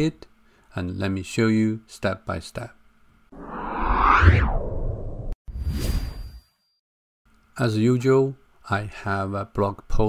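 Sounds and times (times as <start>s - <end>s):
whoosh swish: 3.4s - 6.2s.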